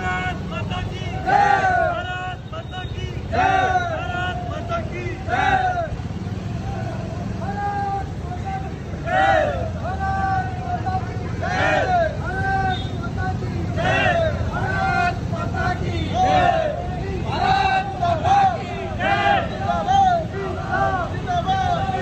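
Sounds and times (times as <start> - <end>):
men shouting a slogan: 0.0 - 22.0
motorcycle engines running: 3.1 - 22.0.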